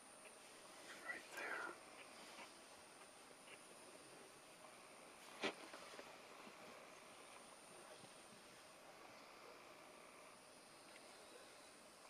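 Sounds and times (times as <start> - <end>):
faint steady hiss: 0.0 - 12.0
person whispering: 0.9 - 1.8.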